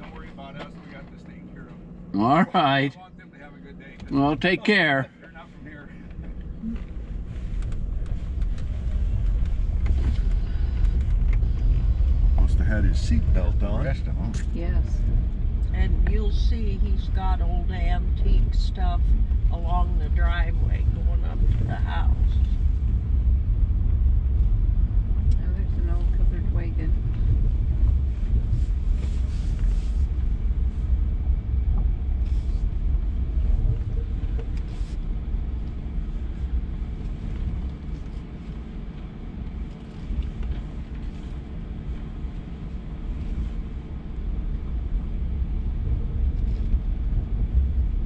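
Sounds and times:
vehicle engine and road rumble: 0:00.0 - 0:48.0.

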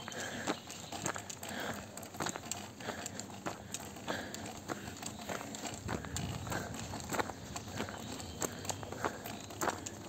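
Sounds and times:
footsteps on gravel: 0:00.0 - 0:10.0.

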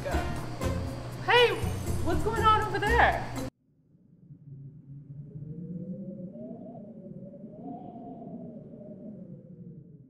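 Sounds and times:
wavering tone: 0:04.0 - 0:10.0.

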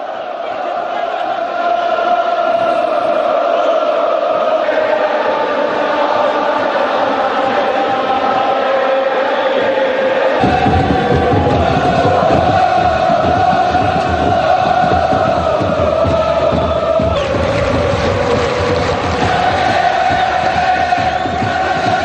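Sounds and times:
stadium crowd chanting: 0:00.0 - 0:22.0.

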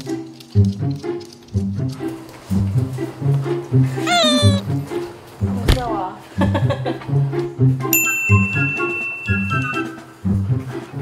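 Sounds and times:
dog whining: 0:04.0 - 0:04.6, 0:09.5 - 0:10.0.

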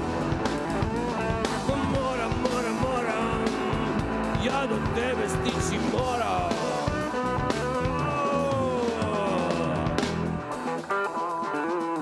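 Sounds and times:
electric guitar: 0:00.0 - 0:12.0
rock band playing: 0:00.0 - 0:12.0
person singing: 0:01.0 - 0:10.7.

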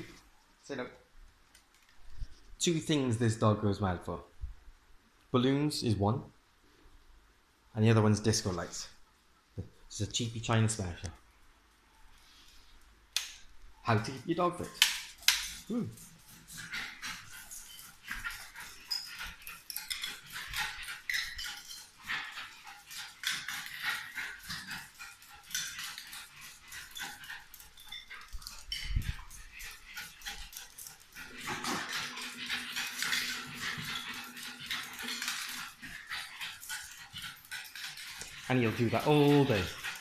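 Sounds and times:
dog claws clicking on tiles: 0:14.2 - 0:40.0.

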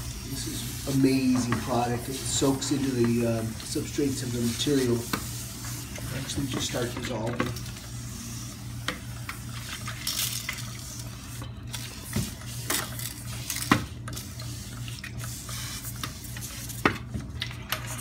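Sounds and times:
sprayer hissing: 0:00.0 - 0:06.4
steady low hum: 0:00.0 - 0:18.0.

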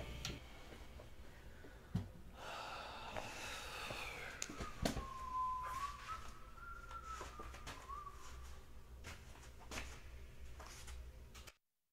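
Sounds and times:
faint thin whistling tone: 0:04.1 - 0:08.7.

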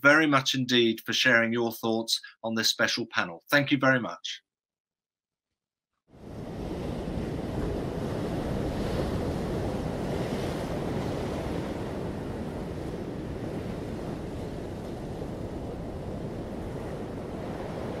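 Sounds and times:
ocean waves breaking: 0:06.1 - 0:18.0.

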